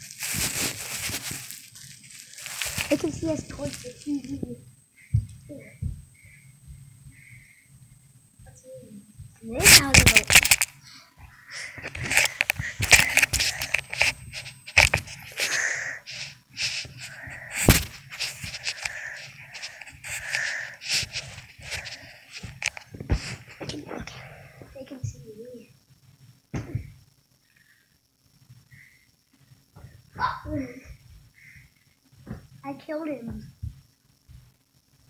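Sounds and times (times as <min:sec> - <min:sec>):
blanket rustling: 0:00.0 - 0:04.3, 0:11.6 - 0:23.6
phone being handled: 0:09.7 - 0:10.7, 0:11.8 - 0:15.6.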